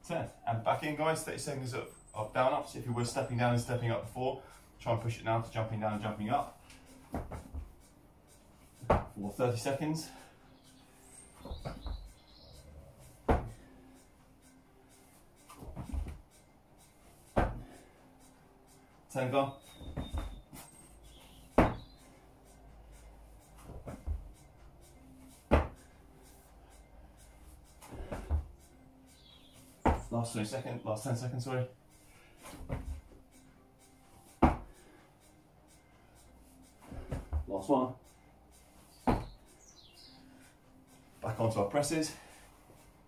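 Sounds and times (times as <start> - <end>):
hands and feet thudding on exercise mat: 4.8 - 7.8, 8.6 - 10.2, 11.2 - 12.2, 13.0 - 13.7, 15.1 - 16.3, 16.9 - 18.0, 19.2 - 22.0, 23.5 - 24.4, 25.2 - 25.9, 27.7 - 28.6, 29.2 - 31.5, 32.2 - 33.3, 34.2 - 35.0, 36.7 - 38.0, 38.7 - 39.5
muffled thump on exercise mat: 7.1 - 7.6, 8.8 - 9.2, 13.3 - 13.6, 15.6 - 16.2, 17.4 - 17.7, 21.6 - 21.9, 25.5 - 25.8, 29.8 - 30.1, 32.6 - 33.0, 34.4 - 34.7, 39.0 - 39.4
soft shuffle on mat: 15.1 - 16.2, 23.5 - 24.4, 29.5 - 30.2, 32.4 - 33.1, 36.8 - 37.7.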